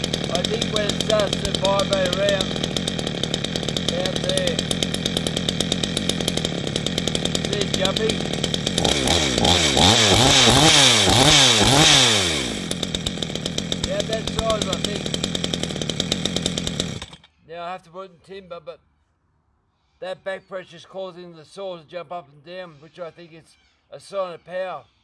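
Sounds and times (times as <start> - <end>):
chainsaw idling and revving: 0.0 - 17.3.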